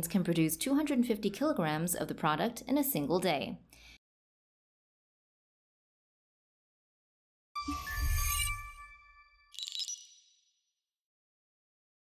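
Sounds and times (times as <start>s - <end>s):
bright high chime ding: 7.6s - 10.3s
short jingle ringing tones: 7.6s - 10.5s.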